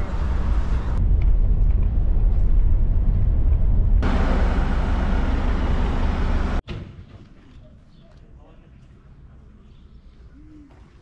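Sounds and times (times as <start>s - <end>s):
wind noise: 0.0s - 4.1s
coach engine and road rumble: 0.0s - 6.6s.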